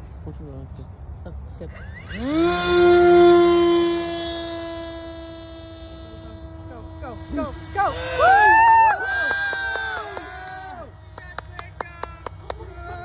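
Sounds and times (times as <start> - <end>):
drone motor and propeller whine: 1.7 - 13.0.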